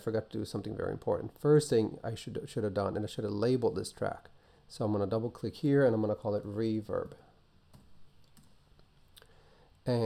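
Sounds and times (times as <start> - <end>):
man speaking: 0.0 - 7.4
keyboard and mouse clicks: 7.7 - 8.6.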